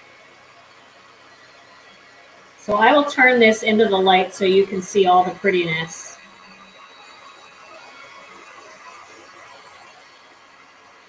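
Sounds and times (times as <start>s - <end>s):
heat tool blowing hot air: 1.2s - 10.8s.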